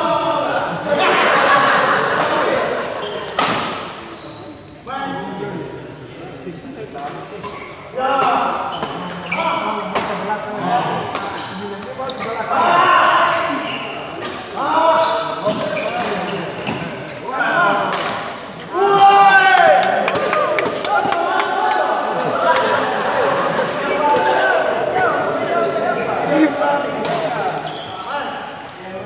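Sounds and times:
people shouting and talking: 0:00.0 - 0:29.0.

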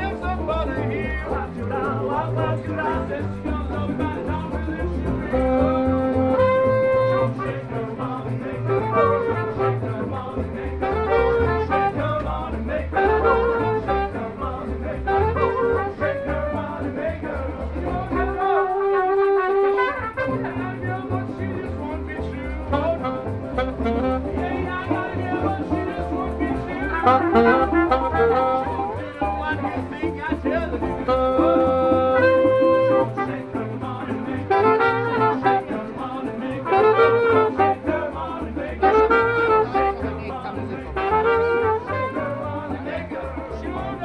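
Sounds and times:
plucked double bass: 0:00.0 - 0:44.0
trumpet and saxophone melody: 0:00.0 - 0:44.0.

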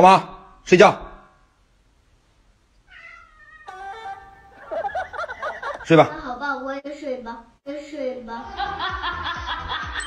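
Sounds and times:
cat meowing: 0:02.8 - 0:04.6.

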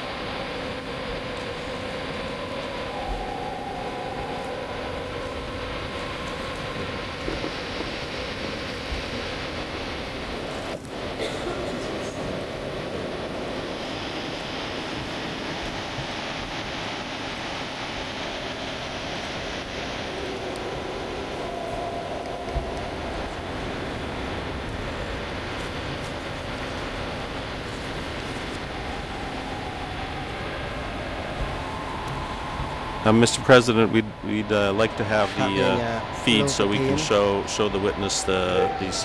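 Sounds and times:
low rumbling hiss: 0:00.0 - 0:39.0.

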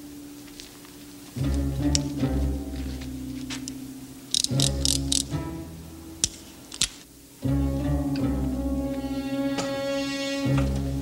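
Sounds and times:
orchestral low strings: 0:00.0 - 0:11.0.

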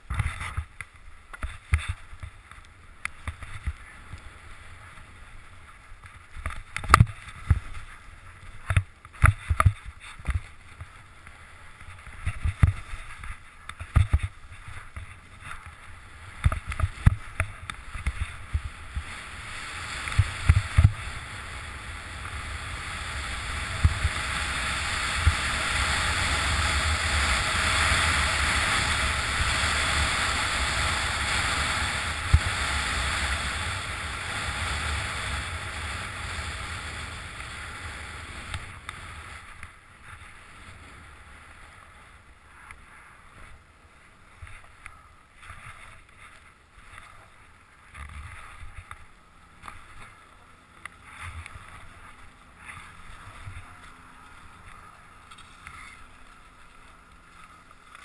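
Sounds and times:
skis running over snow: 0:00.0 - 0:58.0
wind on microphone: 0:11.9 - 0:41.3.

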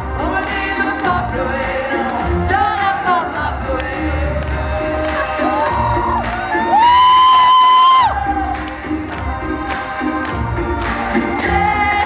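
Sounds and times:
audience cheering and whooping: 0:05.0 - 0:08.7.

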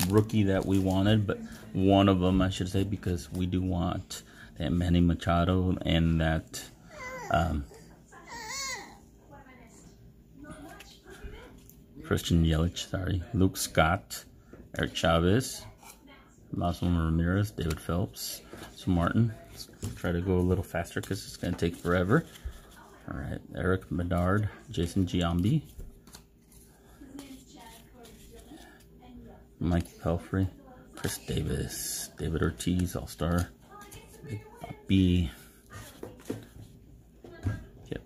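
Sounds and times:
cardboard cards rustling and sliding: 0:00.0 - 0:03.6, 0:20.2 - 0:22.9, 0:24.0 - 0:28.6.

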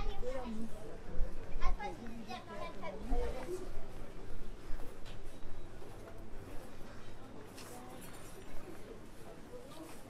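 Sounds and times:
people talking on street: 0:00.0 - 0:10.0.

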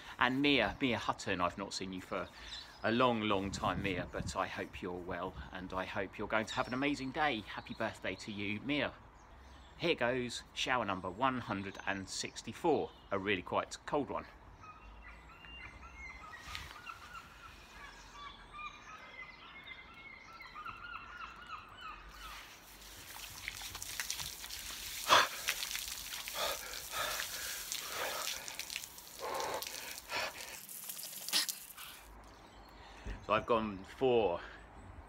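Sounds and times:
birds chirping: 0:00.0 - 0:35.0
hose water spraying: 0:22.2 - 0:32.1.

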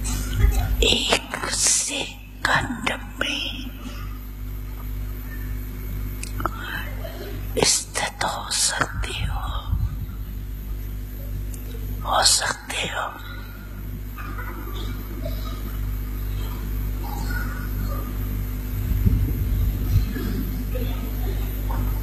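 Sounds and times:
low electrical hum: 0:00.0 - 0:22.0
woman speaking into microphone: 0:00.3 - 0:04.2, 0:06.2 - 0:10.3, 0:12.0 - 0:13.6.

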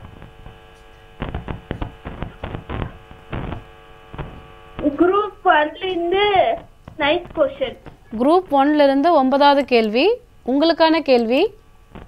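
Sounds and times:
irregular clicks and crackles: 0:00.0 - 0:04.9, 0:06.5 - 0:10.2, 0:11.0 - 0:12.0
electrical mains hum: 0:00.0 - 0:12.0.

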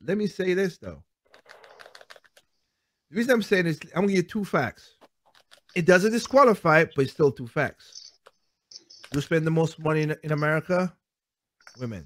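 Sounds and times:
faint keyboard typing: 0:01.2 - 0:02.6, 0:04.9 - 0:06.7, 0:07.9 - 0:10.7.

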